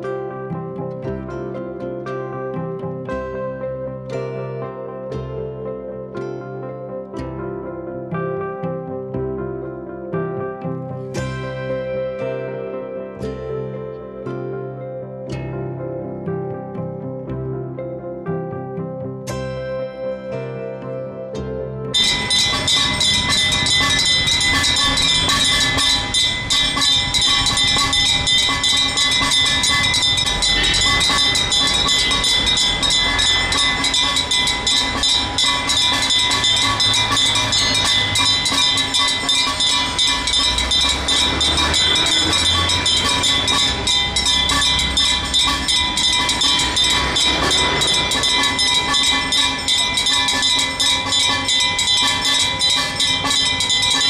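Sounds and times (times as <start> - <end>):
brass bells clanging rapidly: 22.0 - 54.0.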